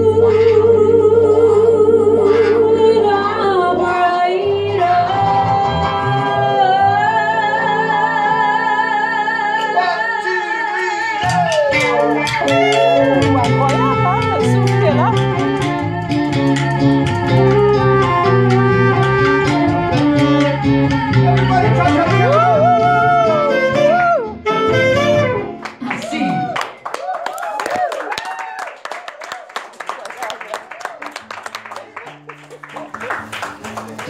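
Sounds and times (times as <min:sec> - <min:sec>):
singers with vibrato: 0:00.0 - 0:25.0
saxophone: 0:00.0 - 0:25.8
guitar: 0:00.0 - 0:26.6, 0:31.1 - 0:34.0
bass line: 0:11.1 - 0:25.6
steady drum beat: 0:11.2 - 0:22.6.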